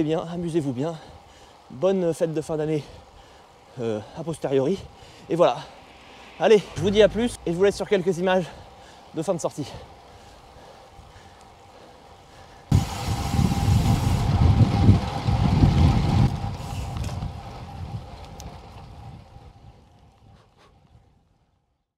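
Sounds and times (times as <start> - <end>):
wind buffeting microphone: 4.3 - 11.2, 12.7 - 21.4.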